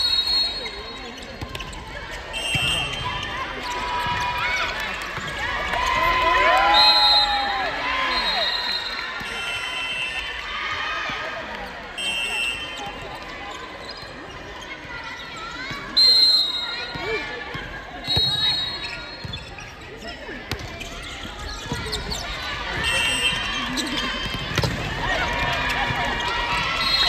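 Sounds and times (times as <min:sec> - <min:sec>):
shoe squeaks: 0:12.0 - 0:17.1, 0:18.1 - 0:24.4.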